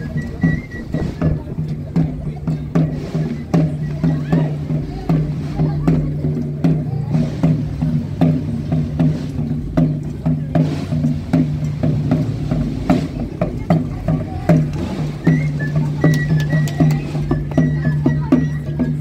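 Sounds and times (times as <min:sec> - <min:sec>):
drum strokes: 0:00.0 - 0:19.0.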